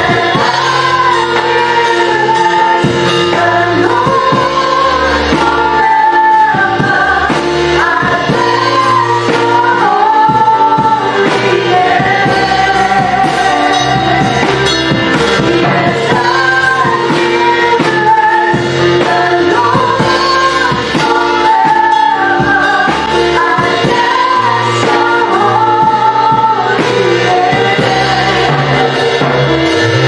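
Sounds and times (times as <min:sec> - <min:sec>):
drum kit steady beat: 0:00.0 - 0:30.0
electric guitars: 0:00.0 - 0:30.0
electronic keyboard: 0:00.0 - 0:30.0
women singing: 0:00.0 - 0:30.0.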